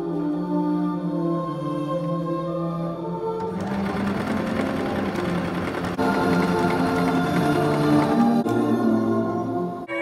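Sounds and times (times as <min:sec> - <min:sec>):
background music: 0:00.0 - 0:10.0
sewing machine stitching: 0:03.4 - 0:08.4.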